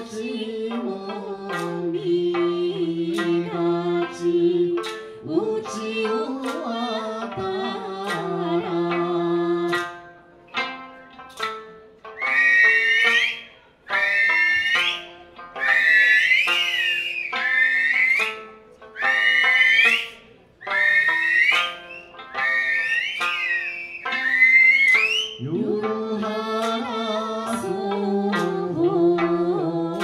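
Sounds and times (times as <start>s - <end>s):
person singing: 0.0s - 10.0s, 25.4s - 30.0s
sanshin plucking slow tune: 0.0s - 30.0s
piercing finger whistles: 12.2s - 25.4s.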